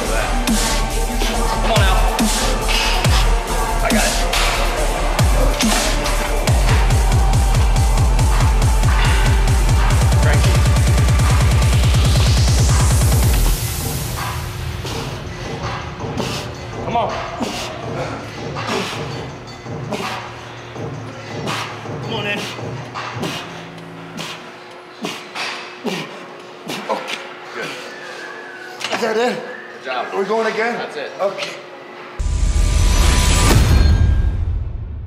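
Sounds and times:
electronic music with rising sweep: 0.0 - 16.8
background music: 0.0 - 31.1.

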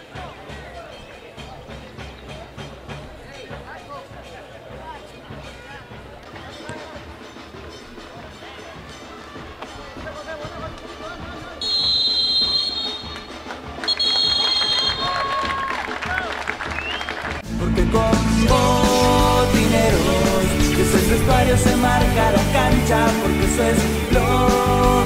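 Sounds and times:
voices: 0.0 - 16.3
music: 0.0 - 25.0
referee whistle blasts: 11.6 - 15.5.

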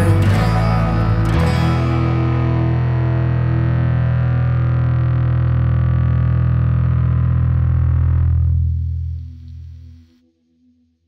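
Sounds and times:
rock band playing: 0.0 - 6.8
distorted electric guitar chord: 0.0 - 10.1.

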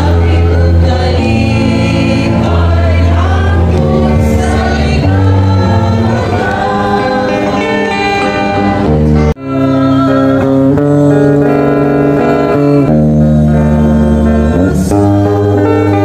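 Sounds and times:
choir singing a hymn: 0.0 - 16.0.

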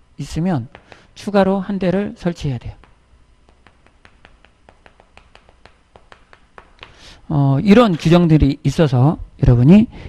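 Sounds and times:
chalk clicking on blackboard: 0.7 - 1.2, 2.8 - 7.2.

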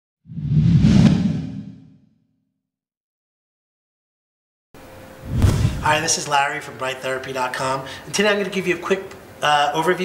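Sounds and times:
whoosh with sharp hit: 0.3 - 1.9, 5.2 - 6.0.

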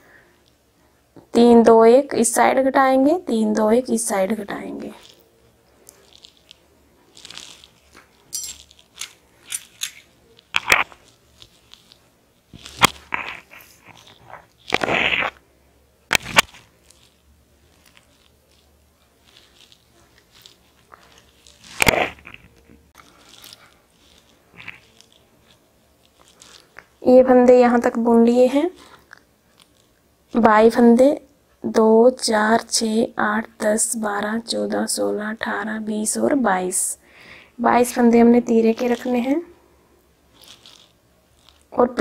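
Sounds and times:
paper rustling and crackling: 5.8 - 15.4, 16.1 - 27.0, 40.4 - 41.7.

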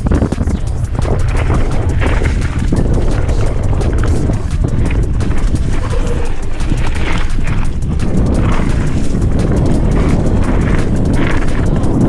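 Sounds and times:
bike rattling over rough ground: 0.0 - 12.0
wind rumble on microphone: 0.0 - 12.0
tyres crunching over leaves: 0.8 - 12.0.

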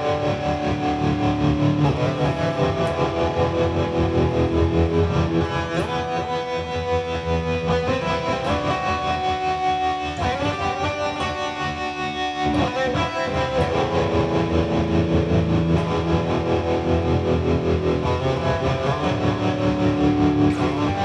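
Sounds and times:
distorted electric guitar riff: 0.0 - 21.0.

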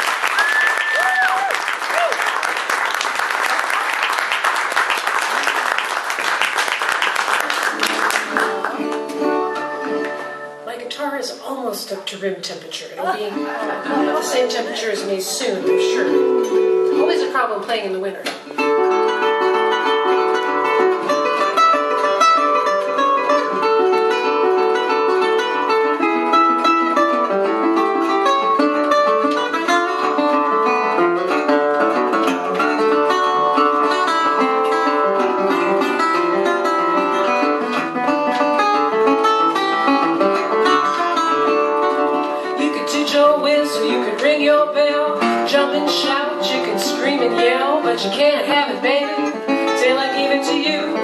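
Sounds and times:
fingerpicked resonator guitar: 7.6 - 51.0.

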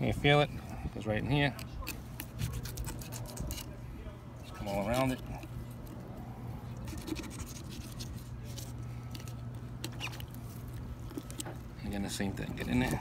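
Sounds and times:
steady low hum: 0.0 - 13.0
knife scraping fish: 0.7 - 3.8, 4.4 - 5.9, 6.7 - 11.6.

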